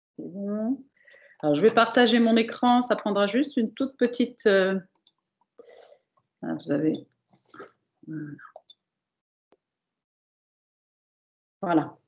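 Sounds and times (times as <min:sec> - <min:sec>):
person speaking: 0:00.2 - 0:04.8, 0:06.4 - 0:07.0.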